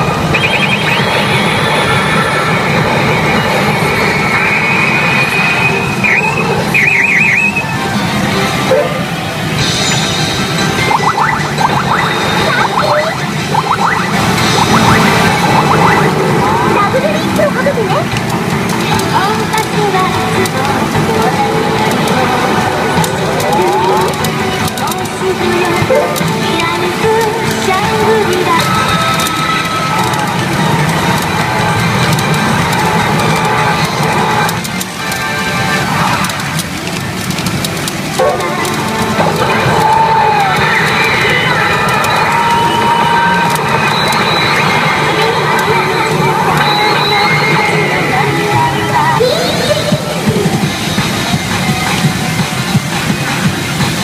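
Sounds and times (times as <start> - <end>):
electronic sound effects: 0.0 - 54.0
pachinko machine music: 0.0 - 54.0.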